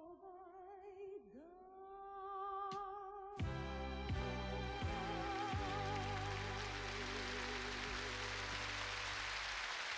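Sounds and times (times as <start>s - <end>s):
orchestra and piano sustained chord: 3.7s - 9.6s.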